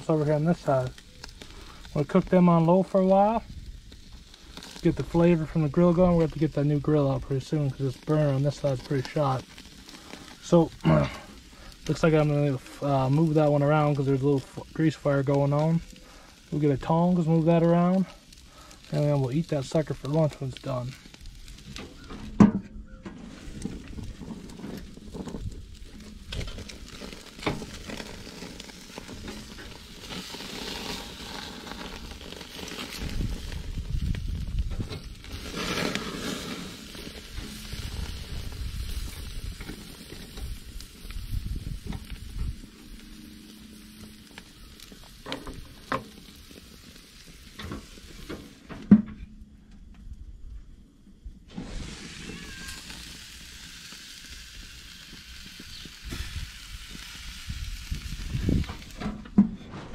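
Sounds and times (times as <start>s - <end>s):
meat sizzling on a grill: 0.0s - 22.4s, 23.2s - 48.8s, 51.5s - 59.2s.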